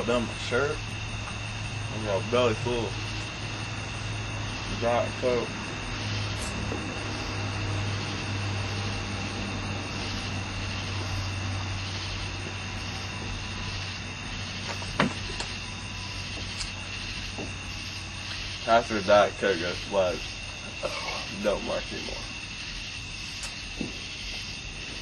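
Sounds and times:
low mechanical drone with hum: 0.0s - 25.0s
sharp click: 23.4s - 23.6s.

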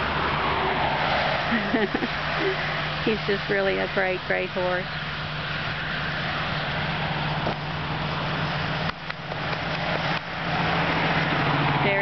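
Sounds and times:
engine running: 0.0s - 12.0s
road noise: 0.0s - 12.0s.

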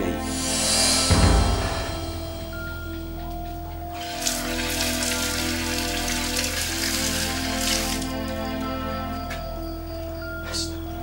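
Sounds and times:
soft music of held notes: 0.0s - 11.0s
tap water running and splashing: 4.0s - 8.7s.

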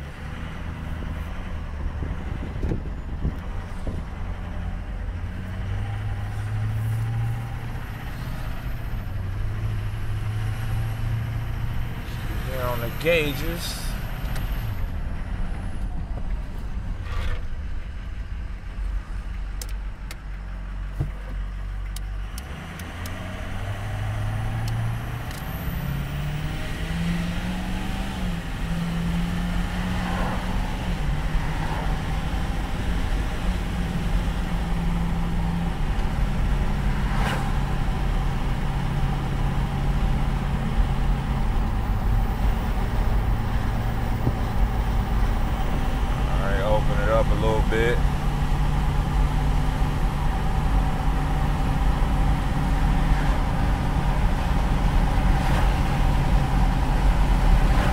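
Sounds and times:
diesel truck accelerating: 0.0s - 57.9s
road noise rumble: 0.0s - 57.9s.

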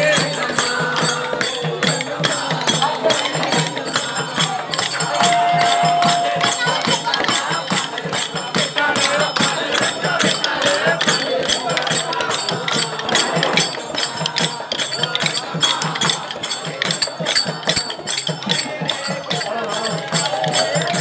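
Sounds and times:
group singing devotional song: 0.0s - 21.0s
hand percussion clicks and jingles: 0.0s - 21.0s.

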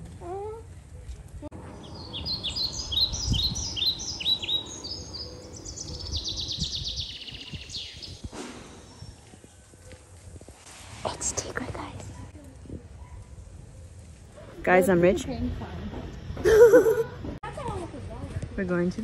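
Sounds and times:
street and wind noise: 0.0s - 19.0s
songbird singing: 1.6s - 10.1s.

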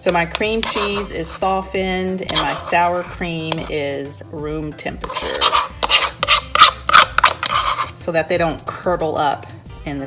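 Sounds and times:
spoon scraping plastic cup: 0.1s - 3.9s, 5.0s - 8.1s.

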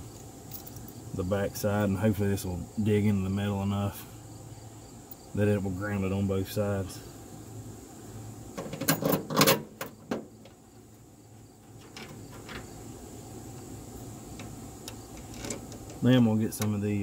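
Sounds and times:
sharp metallic clicks and knocks: 8.6s - 10.6s, 11.6s - 12.7s, 14.3s - 16.0s
faint ticks: 14.3s - 16.0s.

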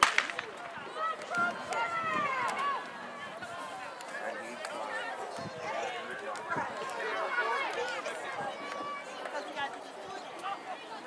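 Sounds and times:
starter's pistol crack: 0.0s - 0.5s
spectators shouting and cheering: 0.0s - 11.0s.

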